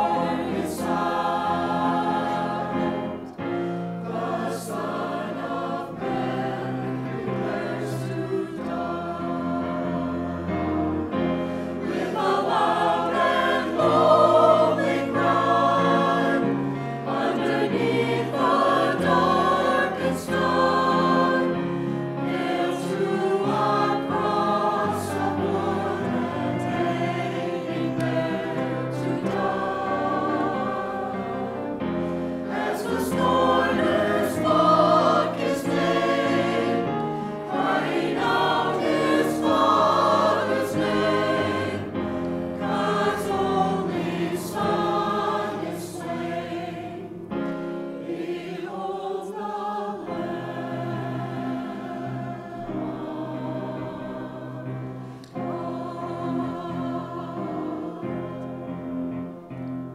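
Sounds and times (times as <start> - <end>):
mixed choir singing: 0.0 - 59.7.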